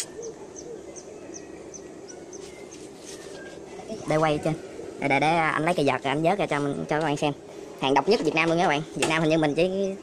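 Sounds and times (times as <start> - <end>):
small bird chirping: 0.0 - 4.6
low background noise: 0.0 - 10.0.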